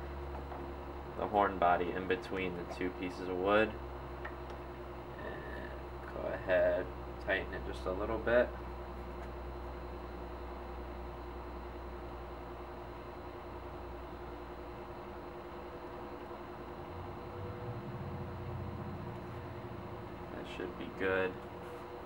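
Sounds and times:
low room hum: 0.0s - 22.0s
soft low rumble: 16.3s - 22.0s
faint held tone: 16.7s - 20.5s.

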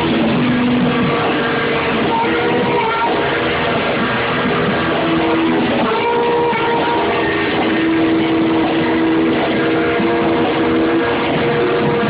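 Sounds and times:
distorted electric guitar: 0.0s - 12.0s
long held note: 0.0s - 12.0s
rock band playing live: 0.0s - 12.0s.

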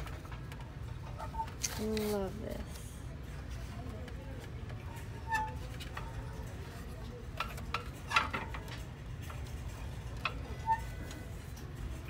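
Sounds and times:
low rumble of store background: 0.0s - 12.0s.

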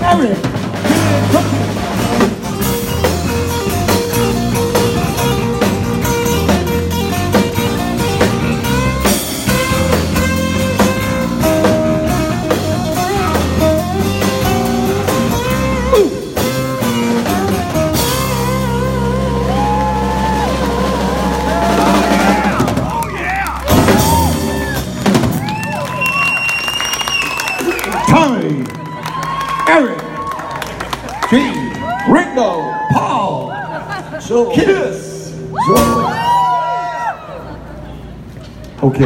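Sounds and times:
acoustic rock band playing: 0.0s - 32.9s, 33.7s - 38.6s.

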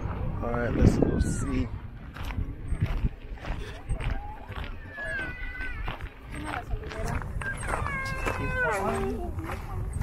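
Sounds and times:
steady low rumble: 0.0s - 4.5s
footsteps crunching on gravel: 0.0s - 10.0s
people's voices: 0.0s - 10.0s.

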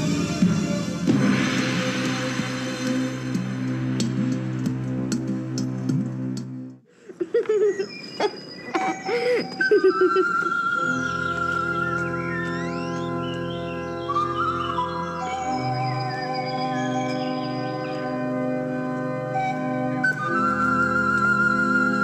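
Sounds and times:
sustained film score chords: 0.0s - 6.8s
organ-like chords: 0.0s - 22.0s
high wavering melody line: 7.7s - 18.6s.

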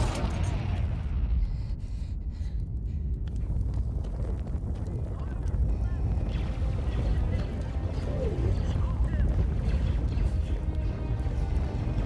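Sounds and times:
fire burning with low rumble: 0.0s - 12.0s.

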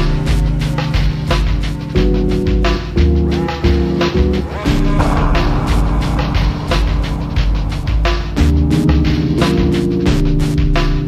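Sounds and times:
electronic trip-hop music: 0.0s - 11.0s
noisy swell: 3.2s - 10.0s.

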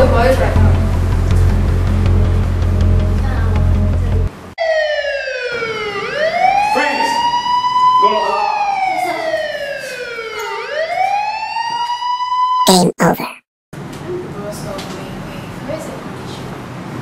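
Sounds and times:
siren wailing: 4.6s - 12.7s.

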